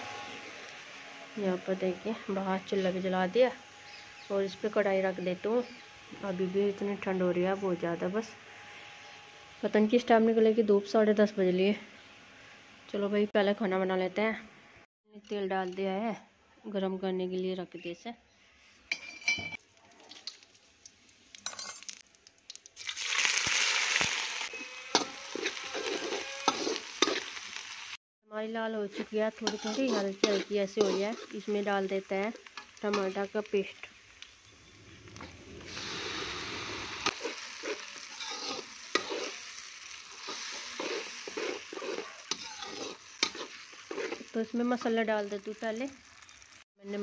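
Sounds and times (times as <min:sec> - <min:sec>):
onions sizzling in hot oil: 0:00.0 - 0:06.8, 0:19.6 - 0:28.0, 0:28.7 - 0:47.0
spoon knocking and scraping in pan: 0:29.4 - 0:31.3
ladle scraping and clinking pan: 0:29.5 - 0:31.3, 0:40.2 - 0:44.2.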